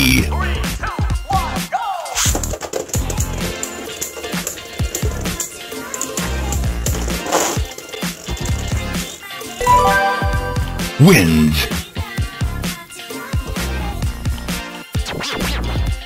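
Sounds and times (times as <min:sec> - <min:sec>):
short melodic sting: 0:09.6 - 0:11.0
background music with steady beat: 0:09.6 - 0:11.1.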